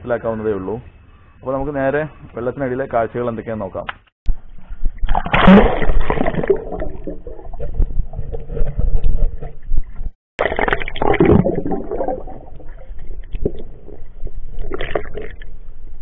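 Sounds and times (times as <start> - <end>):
underwater gurgling and bubbles: 4.8 - 16.0.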